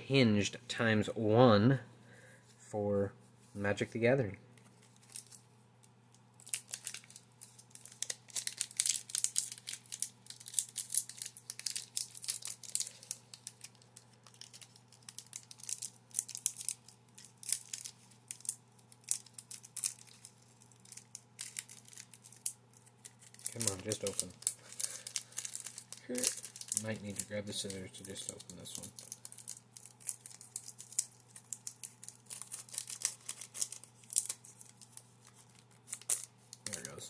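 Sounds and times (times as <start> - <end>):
foil wrapper crinkling and tearing: 4.6 - 5.5, 6.3 - 37.0.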